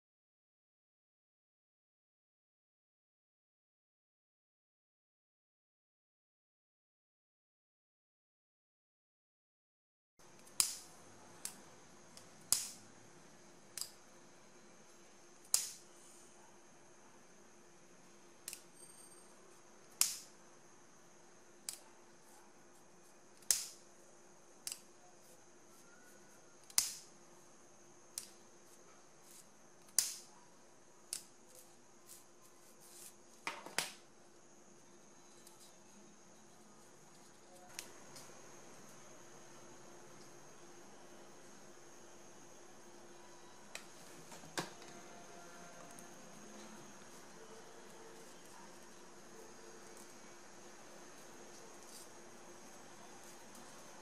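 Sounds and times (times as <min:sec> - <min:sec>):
faint steady hum: 0:10.2 - 0:54.0.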